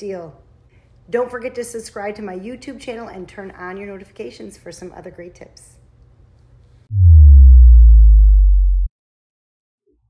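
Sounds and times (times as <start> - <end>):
deep electronic bass tone: 6.9 - 8.9.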